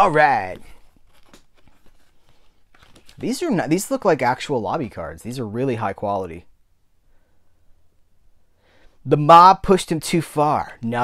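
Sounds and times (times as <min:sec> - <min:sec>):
card and packaging rustling: 0:00.0 - 0:04.1.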